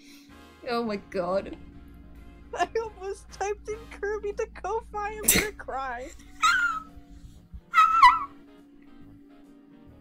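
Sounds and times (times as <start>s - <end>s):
faint background music: 0.0s - 10.0s
high-pitched squealing laugh: 6.2s - 6.9s, 7.7s - 8.4s.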